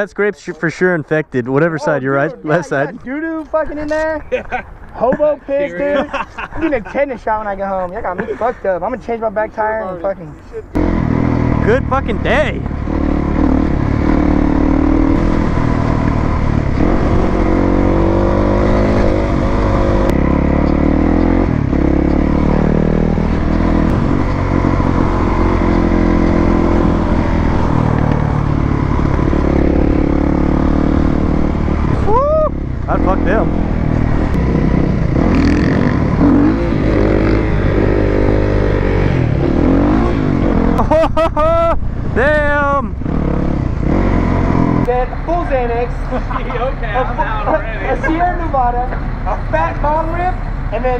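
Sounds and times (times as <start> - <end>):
motorcycle engine revving: 10.8 - 47.2
wind rushing over microphone: 10.9 - 20.4, 21.0 - 44.9.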